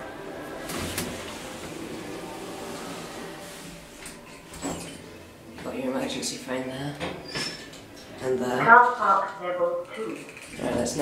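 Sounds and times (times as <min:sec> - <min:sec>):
lift doors sliding open: 0:00.0 - 0:05.4
lift running noise: 0:00.0 - 0:05.8.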